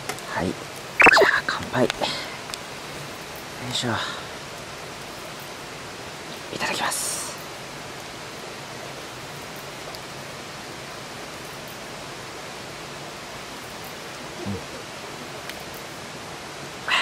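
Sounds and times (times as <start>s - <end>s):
wood fire crackling: 0.0s - 6.5s, 7.4s - 16.8s.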